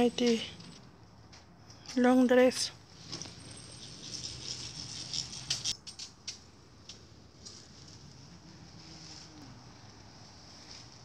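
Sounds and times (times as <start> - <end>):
clothes on hangers rustling: 0.0 - 11.0.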